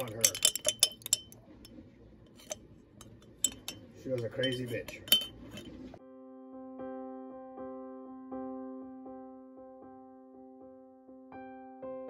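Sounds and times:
metal spoon clinking on glass jar: 0.0 - 1.4, 2.3 - 5.9
spoon stirring liquid: 0.0 - 6.0
soft piano music: 6.0 - 12.0.

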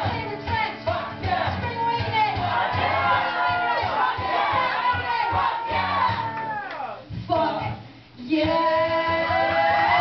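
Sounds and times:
voices shouting and whooping: 2.5 - 6.9
woman singing into microphone: 7.1 - 10.0.

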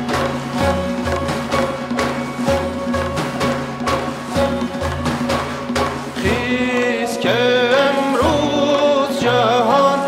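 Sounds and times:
frame drums beating: 0.0 - 10.0
sustained instrumental notes: 0.0 - 10.0.

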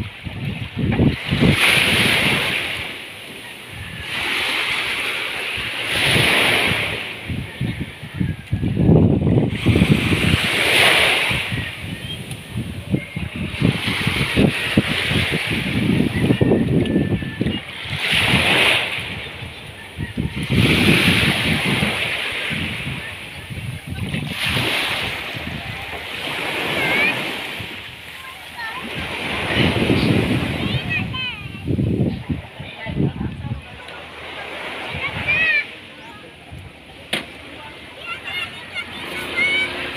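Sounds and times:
small waves washing around boat: 0.0 - 39.9.

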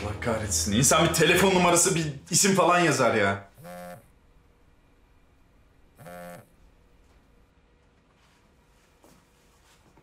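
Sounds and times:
mobile phone buzzing: 3.5 - 4.2, 5.9 - 6.7.

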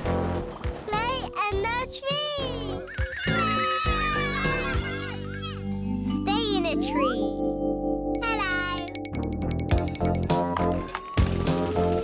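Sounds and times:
children's music: 0.0 - 12.0.

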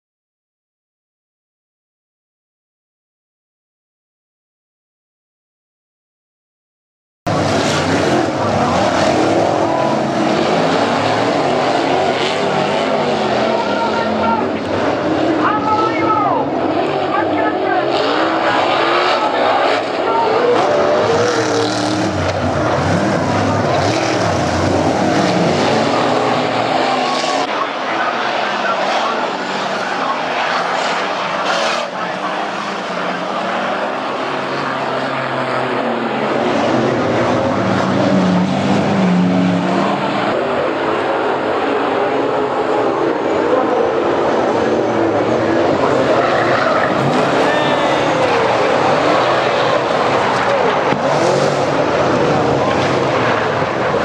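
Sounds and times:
race car engines: 7.3 - 54.0.

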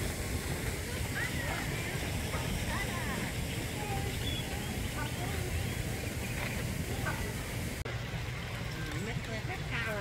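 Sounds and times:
child talking: 0.9 - 5.9.

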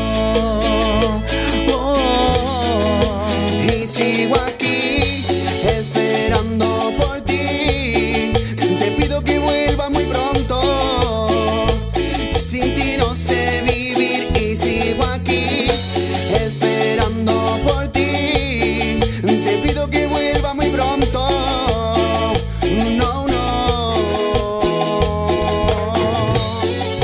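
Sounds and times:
bass: 0.0 - 27.0
electric guitar: 0.0 - 27.0
keyboards: 0.0 - 27.0
man singing: 0.0 - 27.0.

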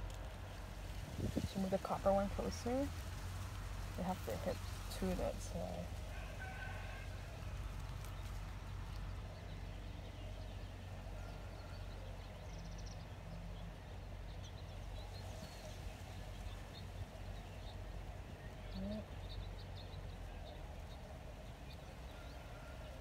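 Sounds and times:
faint bird chirps: 8.0 - 23.0.

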